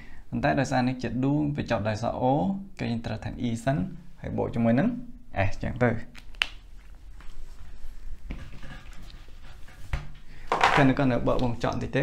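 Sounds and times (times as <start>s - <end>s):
rubbing on a whiteboard: 8.3s - 10.2s.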